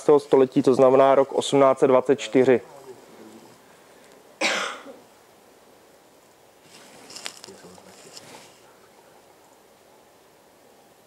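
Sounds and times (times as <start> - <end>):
short cough: 4.4 - 5.0.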